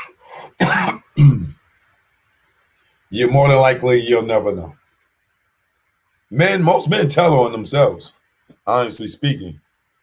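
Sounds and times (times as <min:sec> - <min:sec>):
man coughing: 0:00.0 - 0:01.6.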